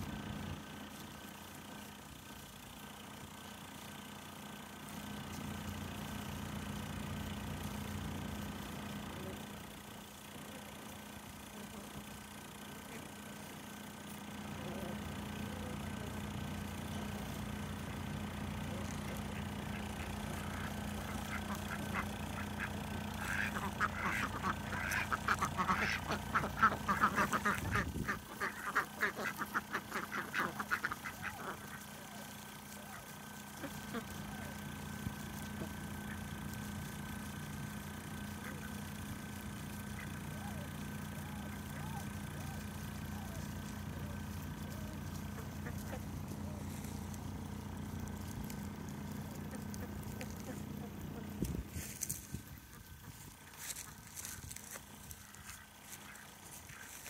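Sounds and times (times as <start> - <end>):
low hum: 4.6 - 57.0
ducks quacking: 10.1 - 57.0.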